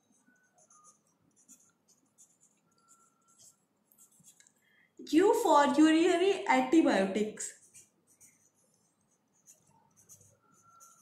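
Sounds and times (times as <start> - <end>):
marker scratching on paper: 0.0 - 4.4, 7.4 - 11.0.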